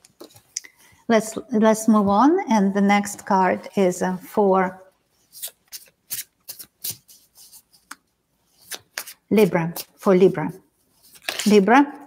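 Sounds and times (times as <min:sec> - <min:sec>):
cards being shuffled: 0:05.2 - 0:10.0, 0:11.0 - 0:11.8.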